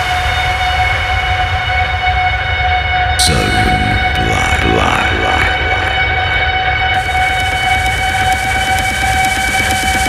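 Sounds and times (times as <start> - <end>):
steady low bass line: 3.2 - 8.3.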